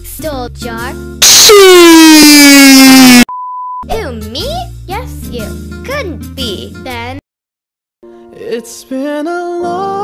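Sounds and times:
children's music: 0.0s - 1.2s, 3.9s - 7.2s, 8.2s - 10.0s
cartoon voice with swooping pitch: 1.2s - 3.2s
loud distorted descending sound: 1.2s - 3.3s
censor bleep: 1.2s - 3.8s.

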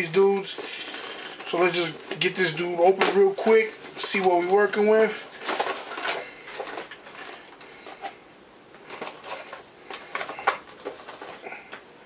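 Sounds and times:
plastic packaging clicks and rustles: 0.0s - 11.8s.

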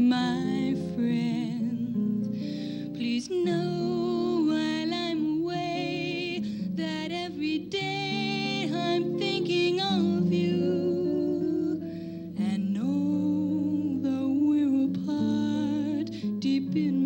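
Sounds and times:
acoustic guitar: 0.0s - 17.0s
woman singing long notes: 0.0s - 17.0s.

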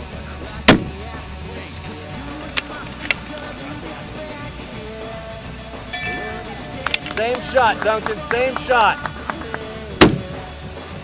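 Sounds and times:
rock music: 0.0s - 11.0s.

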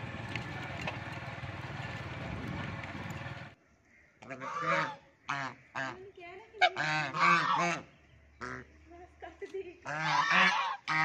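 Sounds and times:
geese honking: 4.2s - 8.7s, 9.8s - 11.0s.

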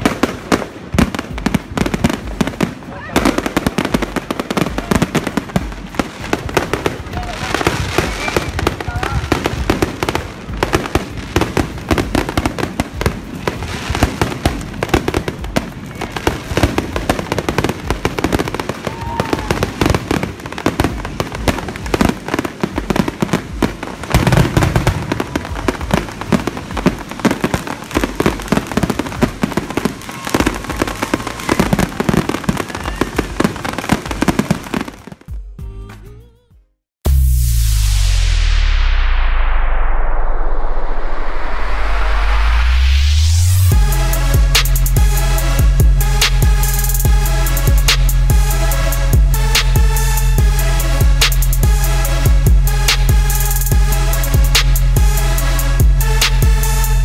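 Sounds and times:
fireworks crackling and banging: 0.0s - 35.6s, 40.9s - 57.0s.

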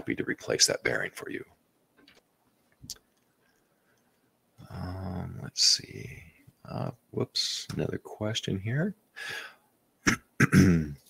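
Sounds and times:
man breathing: 9.2s - 9.7s
man clearing throat: 10.0s - 11.0s.

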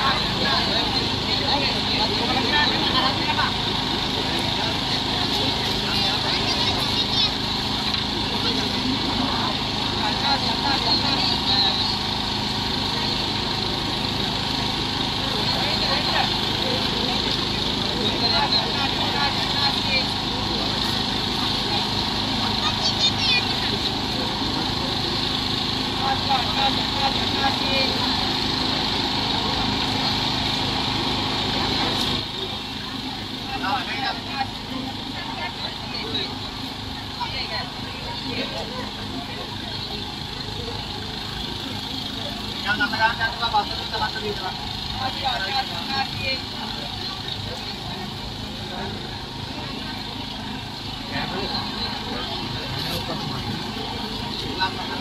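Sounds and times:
crowd chatter: 0.0s - 55.0s
engine hum: 0.0s - 55.0s.

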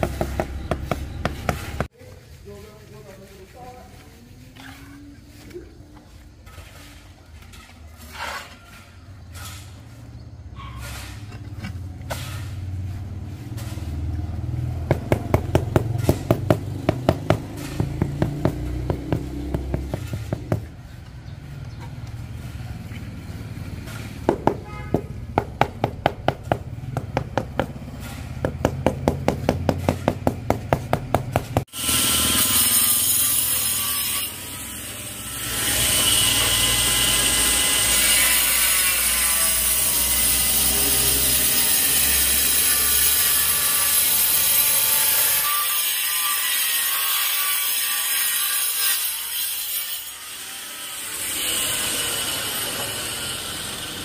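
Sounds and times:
angle grinder cutting tile: 31.6s - 54.0s.

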